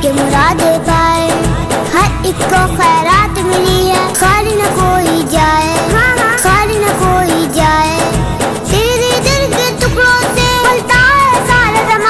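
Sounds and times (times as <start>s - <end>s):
boy singing: 0.0s - 12.0s
instrumental backing with low beat: 0.0s - 12.0s.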